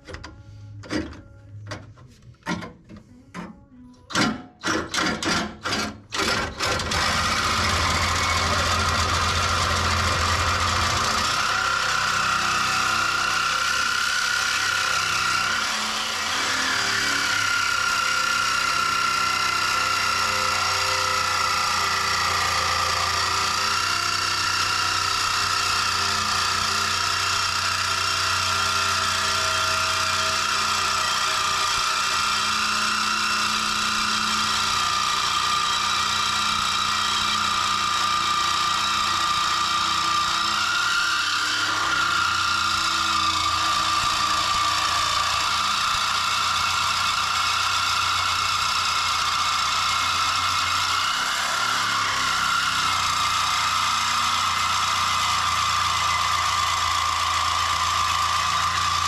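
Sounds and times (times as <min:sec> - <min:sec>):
reciprocating saw cutting metal: 0:04.1 - 0:59.0.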